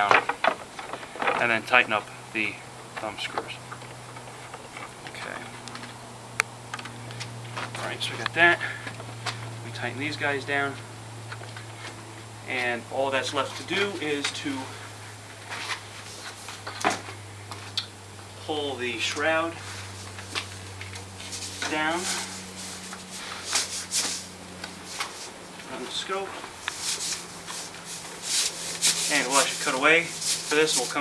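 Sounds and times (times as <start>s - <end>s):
steady low hum: 0.0s - 31.0s
cloth rustling: 19.5s - 31.0s
cloth brushing swishes: 21.2s - 25.4s, 26.2s - 31.0s.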